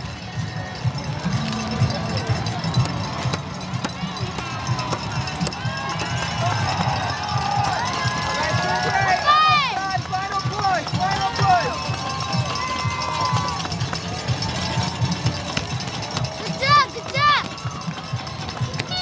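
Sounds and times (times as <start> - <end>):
crowd cheering and shouting: 0.0 - 19.0.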